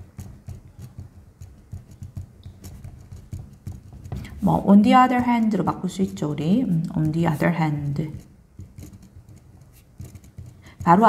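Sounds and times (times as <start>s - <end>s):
pen scratching on paper: 0.0s - 11.0s.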